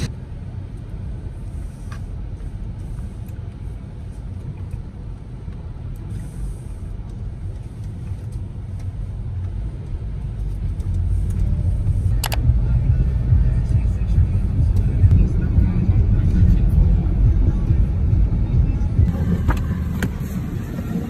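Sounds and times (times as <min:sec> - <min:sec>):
car cabin low rumble: 0:00.0 - 0:21.0.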